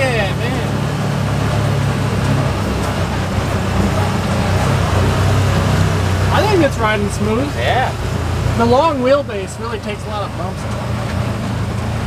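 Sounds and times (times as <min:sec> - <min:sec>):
vehicle engine low drone: 0:00.0 - 0:12.0.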